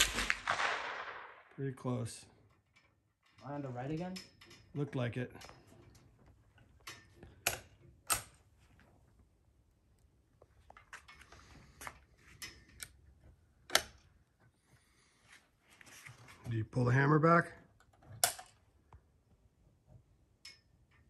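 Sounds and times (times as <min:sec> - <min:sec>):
rifle bolt clicking: 0:13.7 - 0:14.0, 0:18.2 - 0:18.6.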